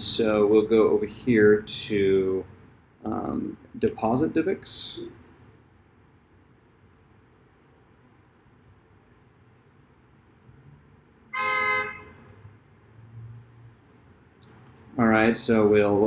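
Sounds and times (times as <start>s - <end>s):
horn toot: 11.3s - 12.3s.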